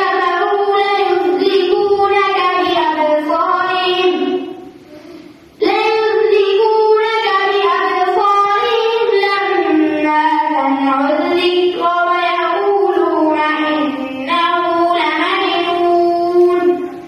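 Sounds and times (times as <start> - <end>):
boy chanting into a microphone: 0.0 - 17.0.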